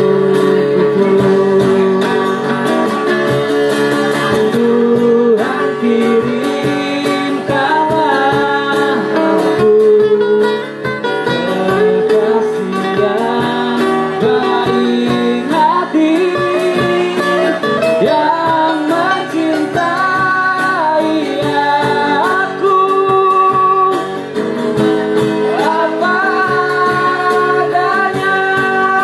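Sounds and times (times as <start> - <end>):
person singing: 0.0 - 3.5, 4.1 - 10.6, 11.2 - 24.2, 25.4 - 29.0
acoustic guitars strumming: 0.0 - 29.0.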